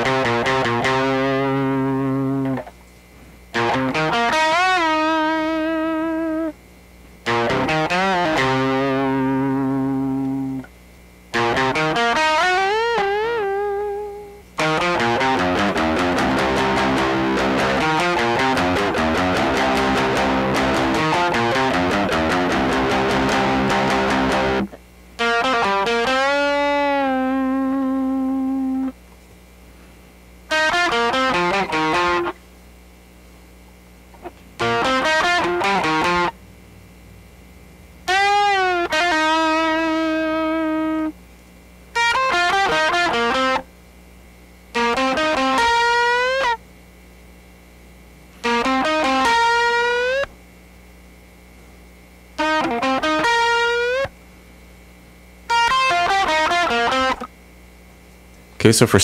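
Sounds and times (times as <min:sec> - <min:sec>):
distorted electric guitar: 0:00.0 - 0:02.7, 0:03.5 - 0:06.6, 0:07.2 - 0:29.0, 0:30.5 - 0:32.4, 0:34.1 - 0:41.2, 0:41.9 - 0:43.7, 0:44.7 - 0:46.6, 0:48.4 - 0:50.4, 0:52.2 - 0:54.2, 0:55.5 - 0:57.4
faint amp hum: 0:00.0 - 0:59.0.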